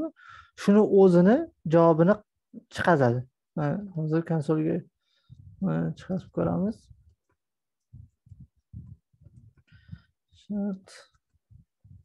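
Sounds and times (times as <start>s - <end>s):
man speaking: 0.0s - 4.9s, 5.6s - 6.9s.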